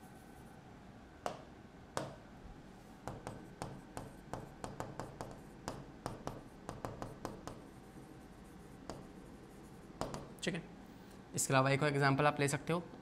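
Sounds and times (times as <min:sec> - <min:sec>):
chalk tapping on blackboard: 0:02.0 - 0:02.2, 0:03.0 - 0:10.4.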